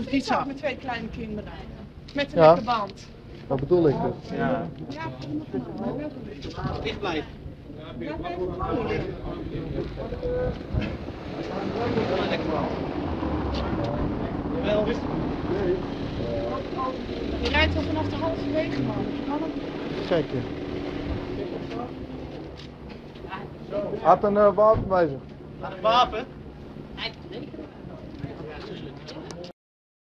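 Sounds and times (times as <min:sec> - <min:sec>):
outdoor background noise: 0:00.0 - 0:29.5
people talking in background: 0:00.0 - 0:29.5
faint indistinct voices: 0:03.5 - 0:29.5.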